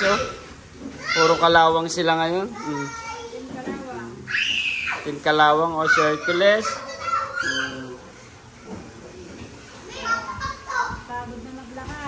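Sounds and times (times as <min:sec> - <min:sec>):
indistinct high-pitched voices: 0:05.9 - 0:08.1.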